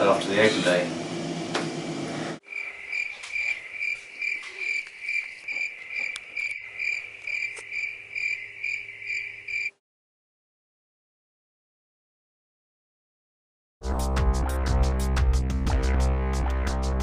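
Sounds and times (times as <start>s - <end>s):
cricket chirping: 2.4s - 9.8s.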